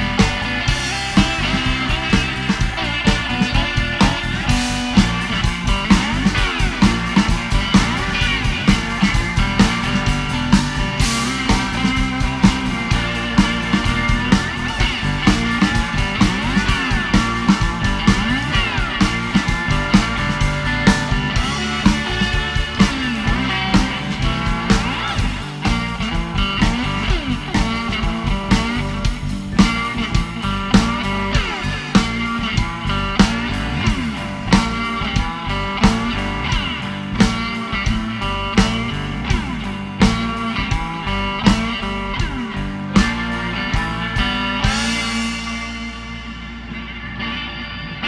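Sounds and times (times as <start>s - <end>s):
drum kit: 0.0s - 47.3s
bass guitar: 0.0s - 48.0s
electric guitar lead: 0.0s - 48.0s
keyboard: 0.0s - 48.0s.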